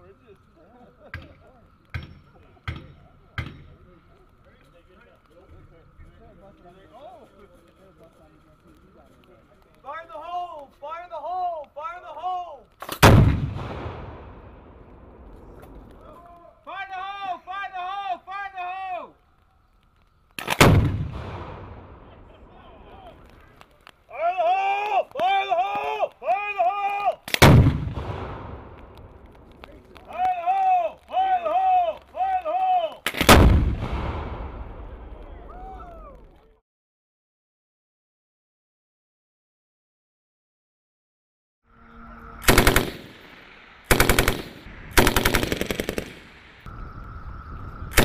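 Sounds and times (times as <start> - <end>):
demolition blast: 12.9 - 16.1, 20.4 - 23.3, 27.3 - 29.9, 33.0 - 35.3
person shouting a long call: 16.1 - 19.1, 24.1 - 27.2, 30.1 - 33.0.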